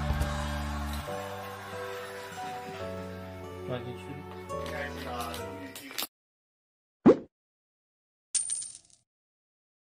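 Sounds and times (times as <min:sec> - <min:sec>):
coin clink sound effect: 0:08.4 - 0:09.0.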